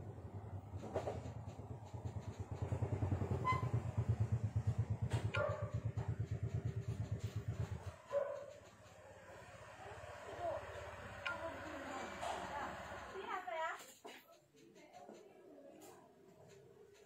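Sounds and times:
small engine idling: 0:00.0 - 0:13.4.

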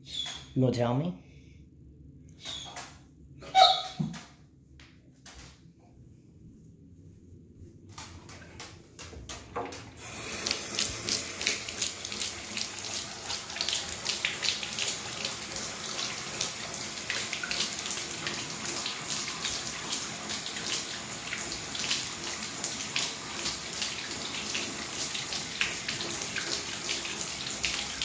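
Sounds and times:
tap water running into tub: 0:08.3 - 0:28.0.

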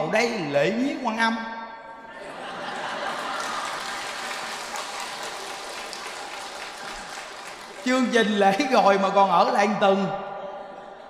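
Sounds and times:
audience clapping: 0:02.6 - 0:08.7.

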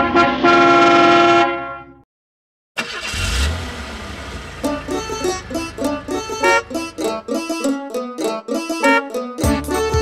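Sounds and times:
held horn-like note: 0:00.0 - 0:01.9
plucked banjo music: 0:04.6 - 0:10.0.

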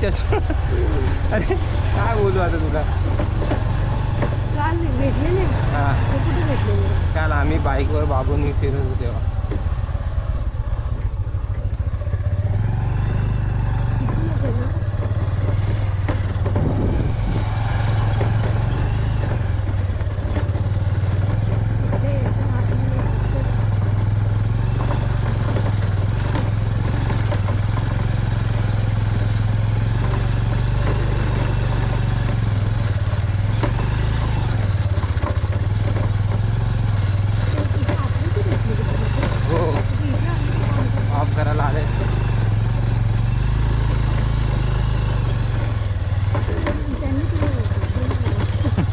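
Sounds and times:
motorcycle engine droning: 0:00.0 - 0:48.9.

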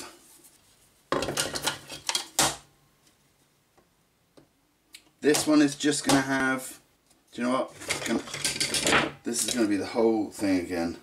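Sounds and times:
wooden parts clacking together: 0:07.8 - 0:09.6.

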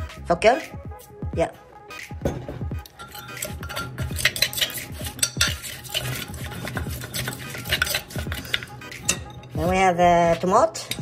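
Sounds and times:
pestle pounding in clay mortar: 0:02.3 - 0:09.2.

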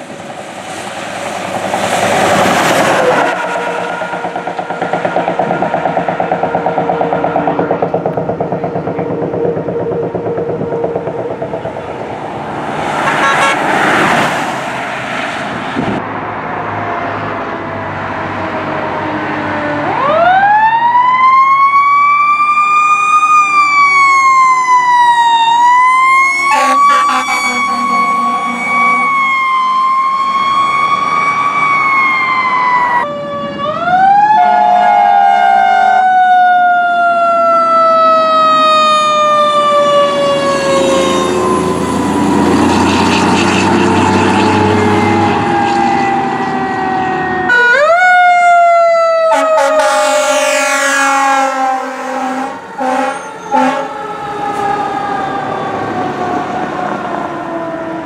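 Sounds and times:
truck engine: 0:00.0 - 0:34.5, 0:36.7 - 0:58.0
fire truck sirens wailing: 0:00.0 - 0:58.0
road noise: 0:00.0 - 0:58.0.

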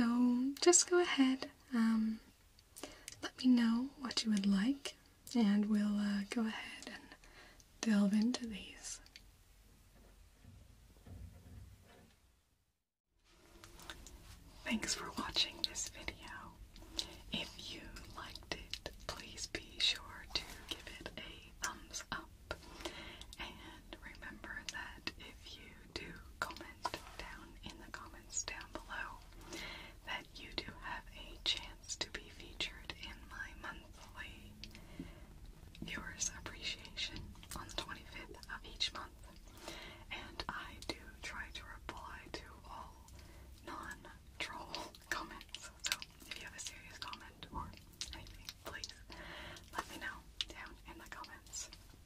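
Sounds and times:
woman whispering: 0:00.0 - 0:02.3, 0:03.2 - 0:07.2, 0:07.8 - 0:09.1, 0:14.6 - 0:22.6, 0:23.2 - 0:29.4, 0:30.0 - 0:34.8, 0:35.8 - 0:51.9
small mouth clicks: 0:44.8 - 0:46.3.

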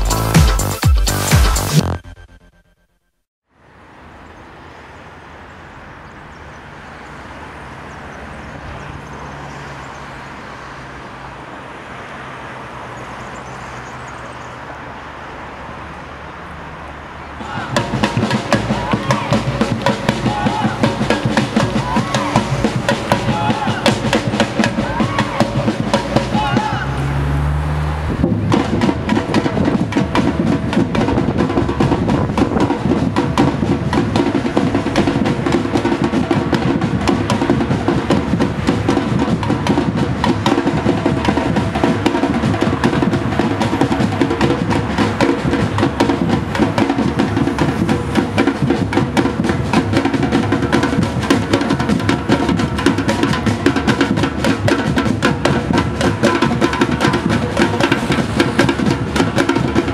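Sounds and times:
samba drum group: 0:00.0 - 0:01.8, 0:17.4 - 0:27.1, 0:28.2 - 0:59.9
voices: 0:04.3 - 0:59.9.

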